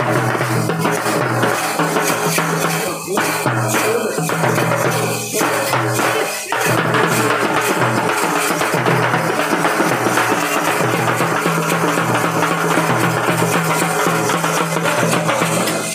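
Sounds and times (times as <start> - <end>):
festival percussion: 0.0 - 15.9
frame drum beaten fast: 0.0 - 15.9.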